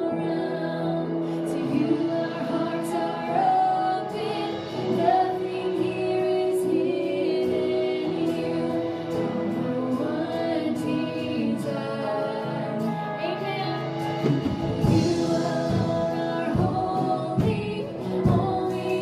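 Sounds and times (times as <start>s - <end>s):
live band with guitar: 0.0s - 19.0s
women singing worship song: 0.0s - 19.0s.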